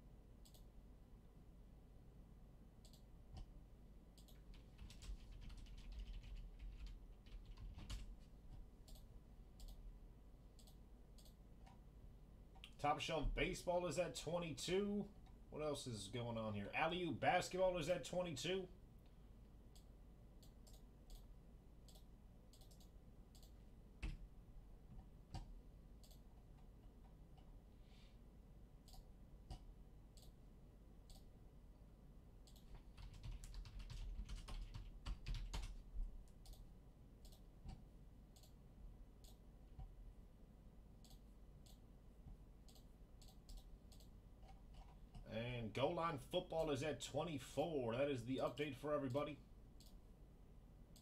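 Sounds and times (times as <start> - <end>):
mouse clicking: 0.4 - 0.7, 2.8 - 3.5, 4.2 - 4.6, 8.8 - 9.8, 10.6 - 11.8, 19.7 - 24.2, 25.3 - 26.3, 28.8 - 30.4, 31.0 - 31.3, 32.4 - 32.8, 36.3 - 38.6, 41.0 - 41.8, 42.6 - 45.2
computer keyboard typing: 4.2 - 8.2, 21.9 - 24.2, 32.5 - 36.6.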